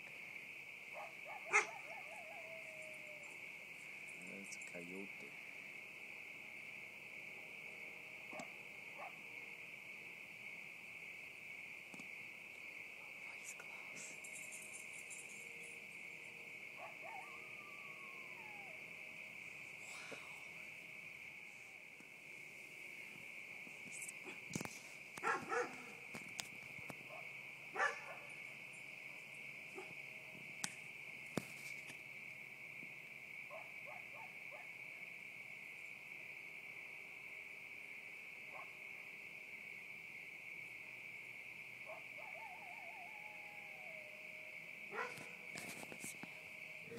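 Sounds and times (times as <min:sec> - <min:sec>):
night insects chorus: 0:00.0 - 0:46.9
coyotes howling: 0:00.8 - 0:05.4, 0:08.2 - 0:09.7, 0:12.8 - 0:21.6, 0:23.9 - 0:30.1, 0:33.4 - 0:34.8, 0:41.8 - 0:46.9
coyotes yipping: 0:00.9 - 0:04.8, 0:08.3 - 0:09.2, 0:13.6 - 0:18.9, 0:23.9 - 0:26.2, 0:26.9 - 0:28.4, 0:29.7 - 0:30.0, 0:41.8 - 0:44.1, 0:44.9 - 0:46.2.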